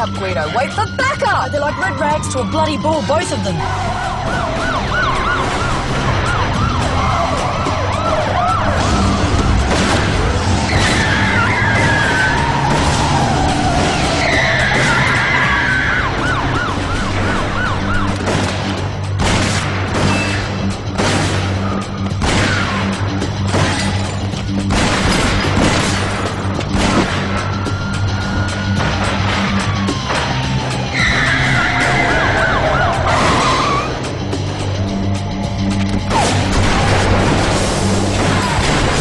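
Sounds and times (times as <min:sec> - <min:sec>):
police siren yelping: 0:00.0 - 0:09.7, 0:10.7 - 0:18.3, 0:27.4 - 0:34.2
background music with low drone: 0:00.0 - 0:39.0
car tyres squealing: 0:10.6 - 0:16.2, 0:30.9 - 0:34.2.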